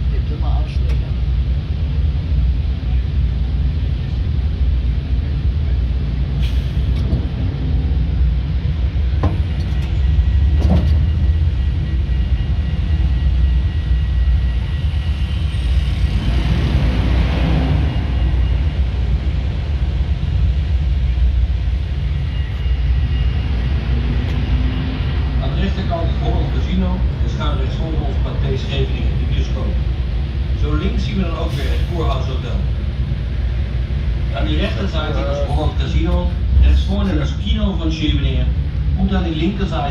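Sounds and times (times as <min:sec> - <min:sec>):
low rumble of road train: 0:00.0 - 0:39.9.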